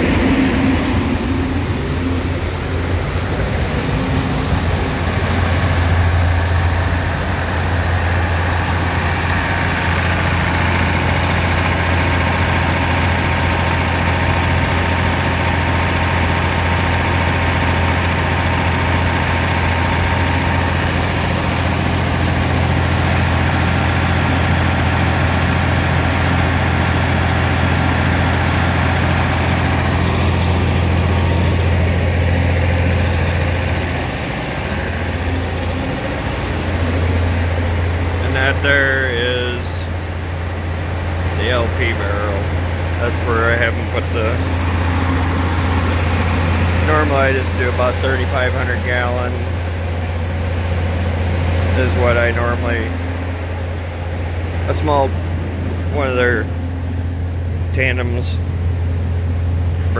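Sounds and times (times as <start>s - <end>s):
farm machinery droning: 0.0s - 59.9s.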